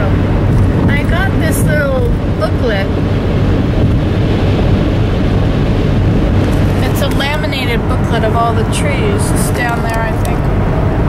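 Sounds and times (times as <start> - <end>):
car road noise at highway speed: 0.0 - 11.0.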